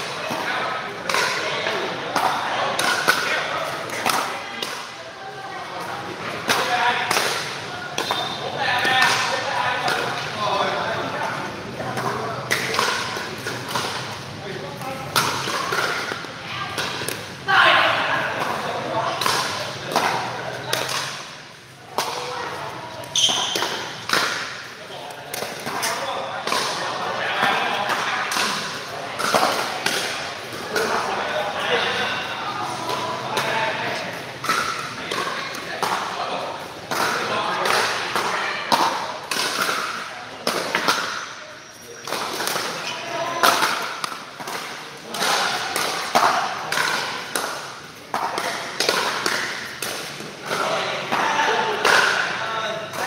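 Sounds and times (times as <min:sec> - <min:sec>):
players' voices: 0:00.0 - 0:53.0.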